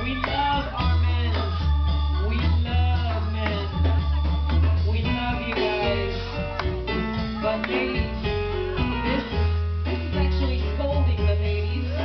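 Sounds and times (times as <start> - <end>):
guitar: 0.0 - 12.0
live band playing: 0.0 - 12.0.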